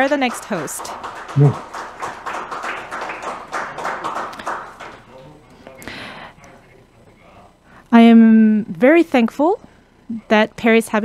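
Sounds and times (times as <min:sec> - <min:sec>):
small group applauding: 0:00.0 - 0:06.0.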